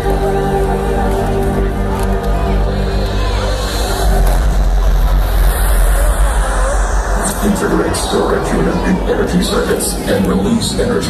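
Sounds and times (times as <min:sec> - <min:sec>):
loud rumbling roar with heavy bass: 0:00.0 - 0:11.0.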